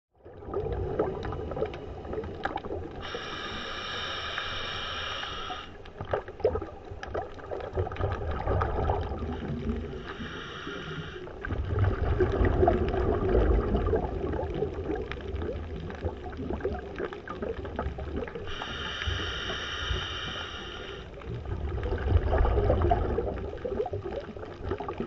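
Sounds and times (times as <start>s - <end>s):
low underwater rumble: 0.1s - 25.0s
high whistling hiss: 3.0s - 5.8s, 18.5s - 21.1s.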